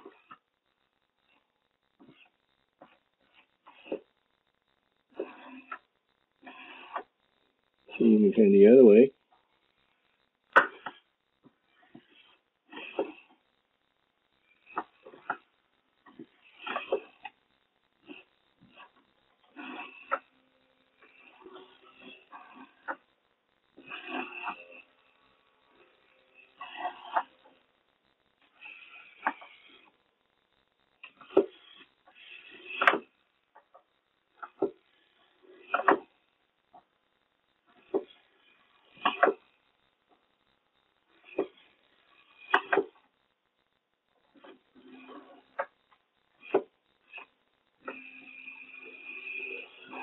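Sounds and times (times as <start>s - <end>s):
faint motor hum: 0.0s - 50.0s.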